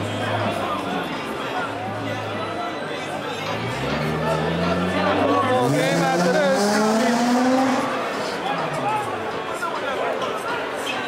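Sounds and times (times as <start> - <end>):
crowd murmur: 0.0 - 11.0
vehicle engine revving: 3.4 - 8.9.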